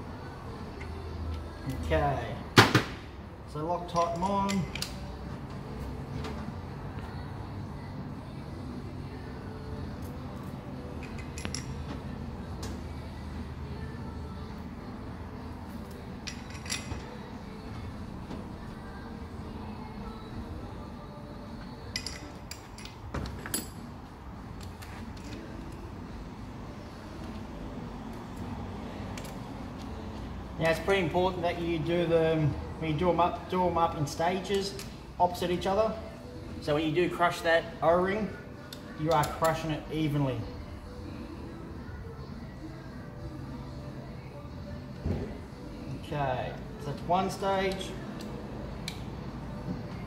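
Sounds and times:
metal parts clinking: 3.9 - 5.0, 11.0 - 11.8, 16.2 - 17.2, 21.9 - 23.8.

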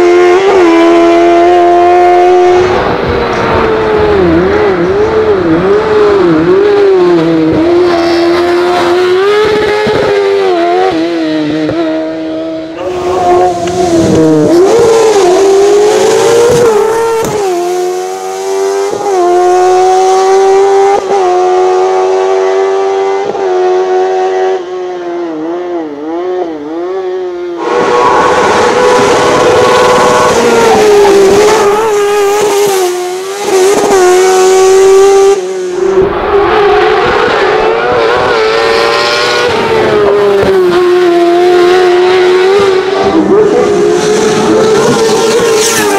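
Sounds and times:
race car engine revving high: 0.0 - 45.9.

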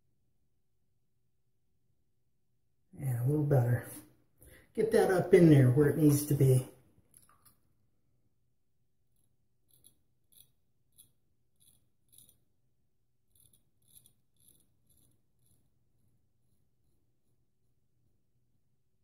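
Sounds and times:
razor rasping on stubble: 9.6 - 12.5, 13.3 - 15.7.

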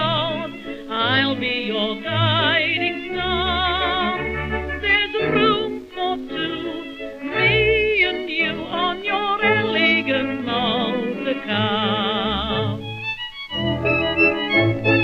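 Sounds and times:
old music-hall song recording: 0.0 - 15.0.

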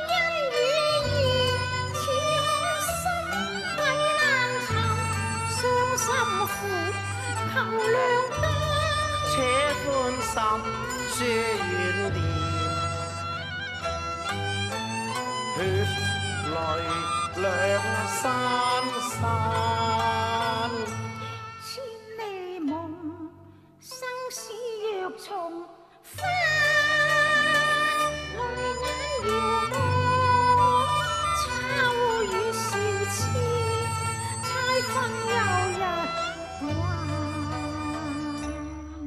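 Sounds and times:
wavering opera melody with vibrato: 0.0 - 39.0.

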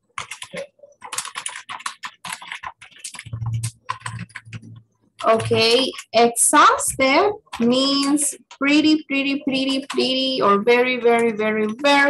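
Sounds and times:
typing on a computer keyboard: 0.0 - 12.0.

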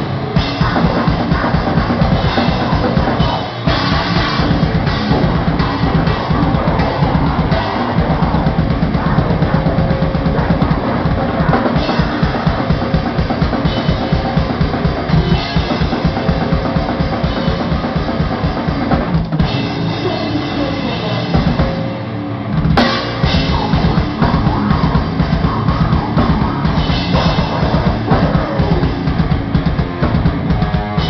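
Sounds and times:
death metal band playing live: 0.0 - 31.0
rapid bass drum strokes: 0.0 - 31.0
cymbals: 22.8 - 29.0.

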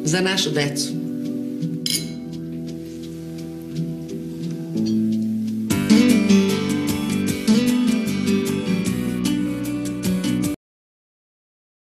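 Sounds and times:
background music: 0.0 - 10.6
wine glasses clinking: 1.8 - 2.3.

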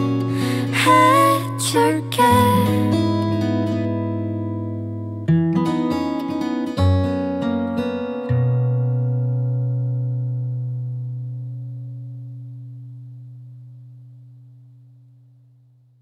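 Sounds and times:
acoustic guitar chord ringing: 0.0 - 15.3.

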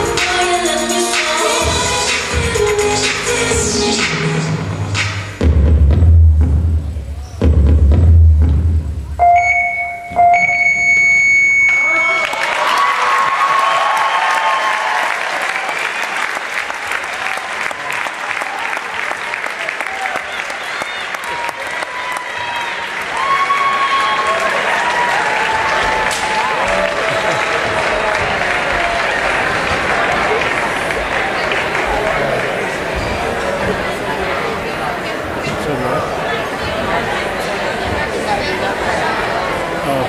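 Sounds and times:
dance music: 0.0 - 9.2
crowd applauding and cheering: 11.6 - 33.6.

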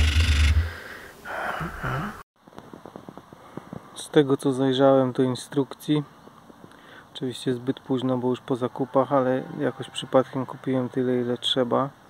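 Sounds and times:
breathy snort of laughter: 1.6 - 2.2.

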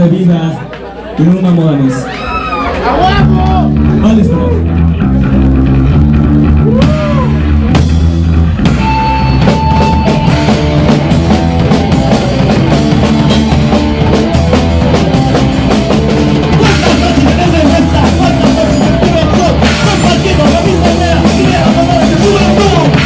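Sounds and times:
punk band playing: 0.0 - 23.0.

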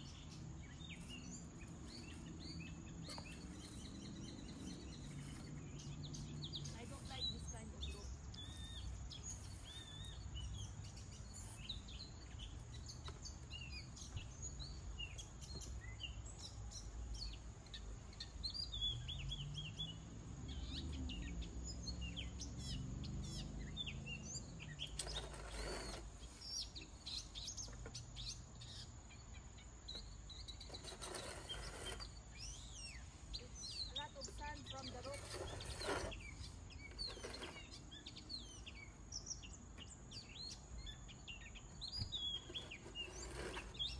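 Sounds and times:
small birds chirping: 0.0 - 43.9.

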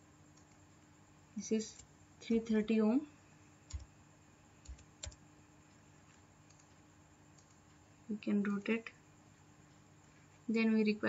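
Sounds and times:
low steady hum: 0.0 - 11.0
keyboard and mouse clicks: 3.7 - 3.9, 4.6 - 5.2, 6.4 - 7.6.

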